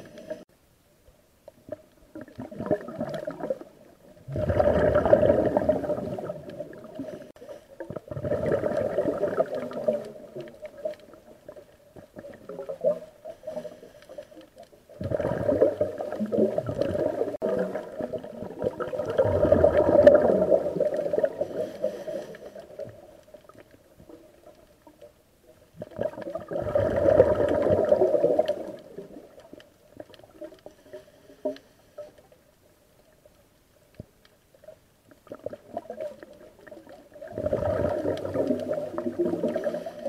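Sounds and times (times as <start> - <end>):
underwater air bubbles gurgling: 1.6 - 33.4, 34.5 - 40.0.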